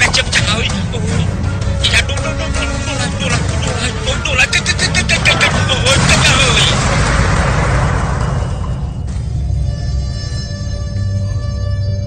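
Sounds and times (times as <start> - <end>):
explosion with crackles: 5.3 - 9.4.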